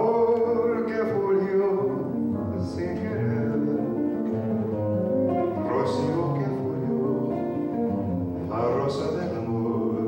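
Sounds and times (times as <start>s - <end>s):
person singing: 0.0s - 4.5s, 5.3s - 10.0s
acoustic guitar: 0.0s - 10.0s
double bass: 0.0s - 10.0s.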